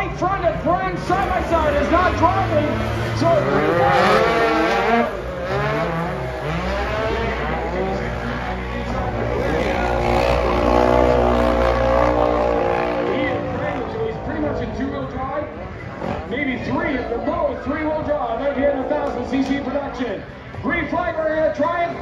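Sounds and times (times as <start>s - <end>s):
engines running and revving: 0.0s - 20.8s.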